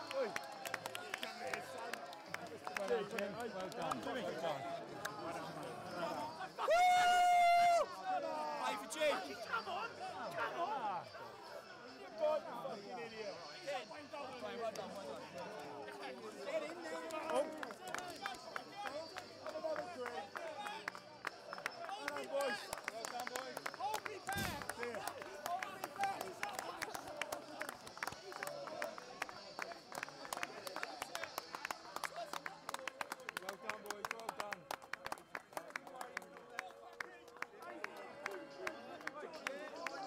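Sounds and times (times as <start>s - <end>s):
people shouting and cheering: 0.0s - 13.8s, 23.8s - 31.3s
hand clapping: 17.0s - 40.0s
thump: 24.4s - 24.7s.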